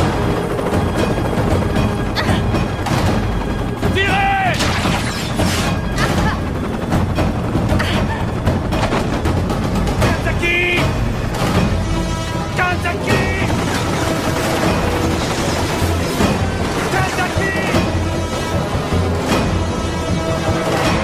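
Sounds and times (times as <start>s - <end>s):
dramatic music: 0.0s - 21.0s
men shouting: 3.8s - 4.7s, 12.4s - 13.6s, 16.8s - 17.8s
gunfire: 4.5s - 6.3s.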